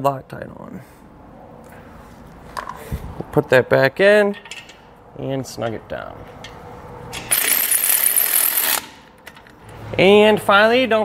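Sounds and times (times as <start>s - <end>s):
electric ratchet whining: 7.2s - 9.0s.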